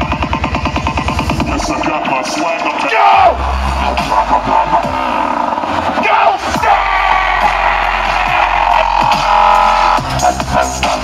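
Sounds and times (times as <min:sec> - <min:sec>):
dubstep over sound system: 0:00.0 - 0:11.0
heavy sub-bass line: 0:00.0 - 0:11.0
large crowd rushing: 0:01.5 - 0:11.0.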